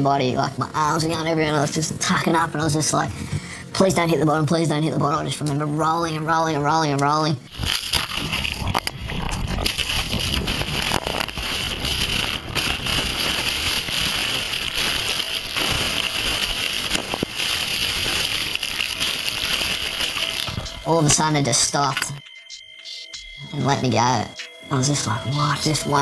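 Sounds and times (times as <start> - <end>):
bubbles crackling: 7.5 - 22.2.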